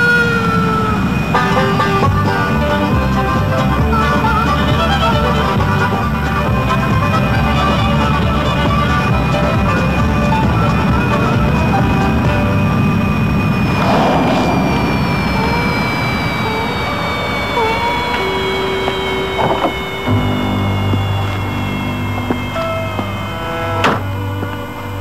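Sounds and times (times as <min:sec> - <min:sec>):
eerie film score: 0:11.4 - 0:25.0
low drone: 0:11.5 - 0:25.0
low rumble: 0:13.6 - 0:17.2.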